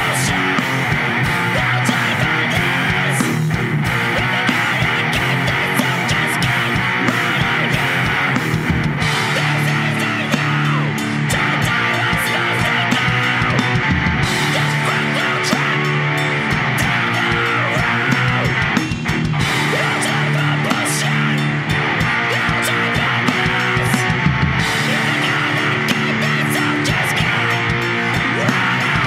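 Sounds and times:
bass guitar: 0.0 - 29.0
distorted electric guitar: 0.0 - 29.0
drum kit: 0.0 - 29.0
hardcore punk band music: 0.0 - 29.0.

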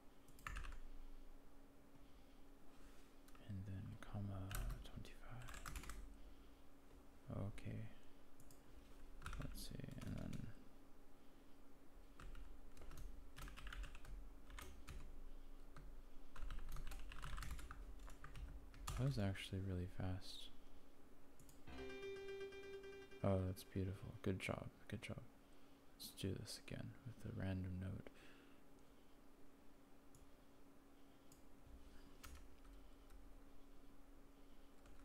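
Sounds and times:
faint steady hum: 0.0 - 35.0
computer keyboard typing: 0.3 - 0.8, 4.4 - 4.8, 5.4 - 6.0, 9.2 - 10.5, 12.2 - 15.1, 15.7 - 19.1, 32.2 - 33.2.

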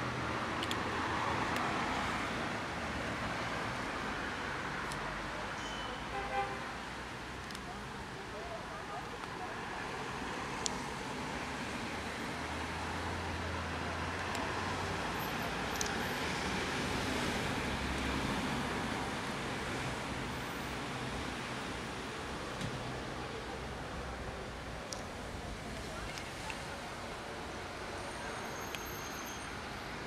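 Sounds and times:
road traffic noise: 0.0 - 30.0.

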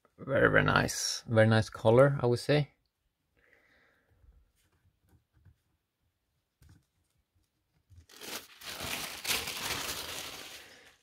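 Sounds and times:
packing sheet crinkling: 7.9 - 11.0.

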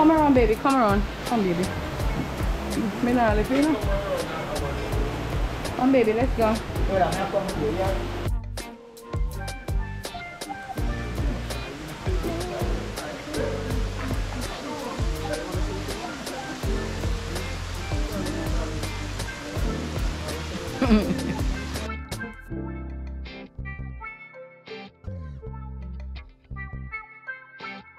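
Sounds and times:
falling water rushing: 0.0 - 8.3, 10.0 - 22.0
music with beat and singing: 0.0 - 27.9.

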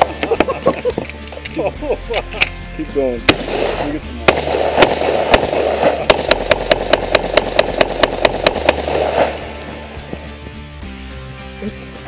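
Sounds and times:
rapid rifle shots: 3.3 - 9.4.

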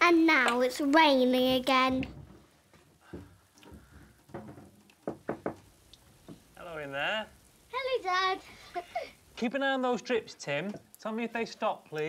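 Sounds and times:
soft knocks: 1.9 - 6.5.

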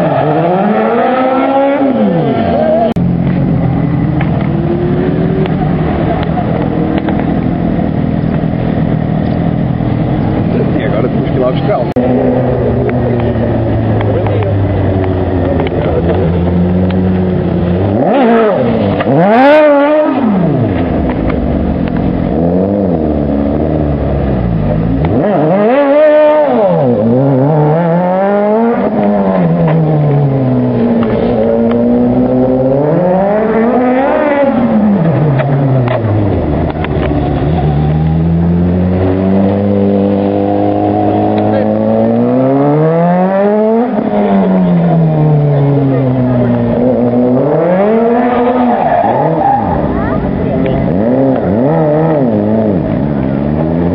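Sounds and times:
car engine revving hard: 0.0 - 21.3, 21.9 - 53.9.

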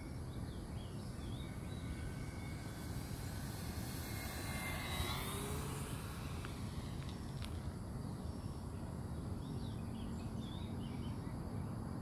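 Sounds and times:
model plane motor whine: 0.0 - 8.8
wind rumble: 0.0 - 12.0.

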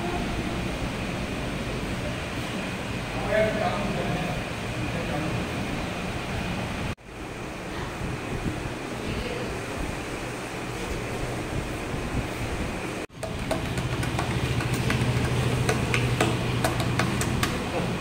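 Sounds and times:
fans running: 0.0 - 18.0
plastic bowl clicking on stone: 13.2 - 17.6.

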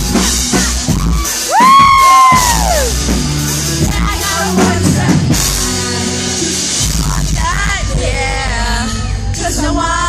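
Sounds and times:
live rock band: 0.0 - 10.0
crowd member screaming: 1.1 - 3.0.

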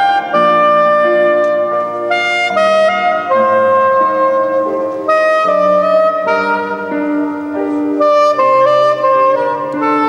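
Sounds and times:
soprano saxophone solo melody: 0.0 - 10.0.

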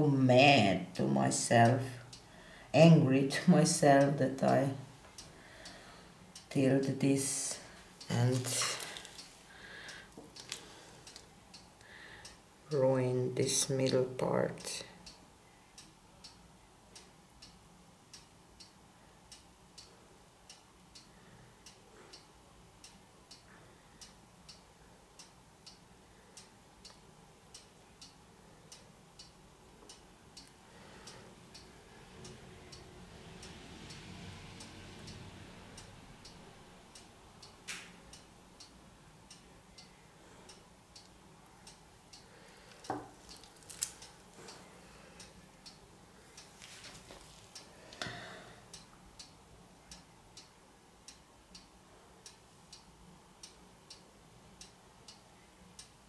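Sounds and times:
clock ticking: 0.2 - 56.0
soft rustle: 46.3 - 47.7.

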